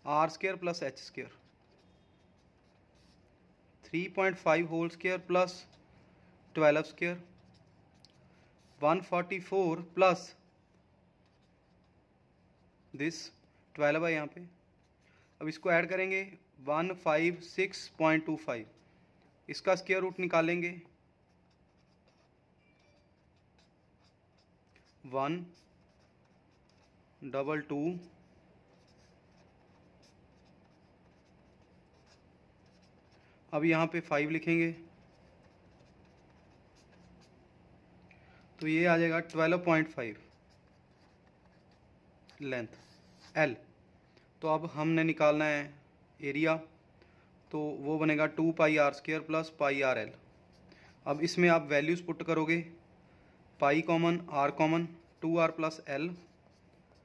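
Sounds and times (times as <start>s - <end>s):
person speaking: 0.0s - 1.9s, 3.8s - 10.5s, 12.8s - 22.3s, 23.2s - 37.4s, 38.2s - 43.7s, 44.4s - 46.7s, 47.4s - 52.8s, 53.6s - 57.0s
pen writing on paper: 1.3s - 3.2s, 4.3s - 9.1s, 11.2s - 12.0s, 21.2s - 27.2s, 28.0s - 33.3s, 34.3s - 37.4s, 39.2s - 43.4s, 56.1s - 57.0s
low room hum: 18.0s - 39.4s.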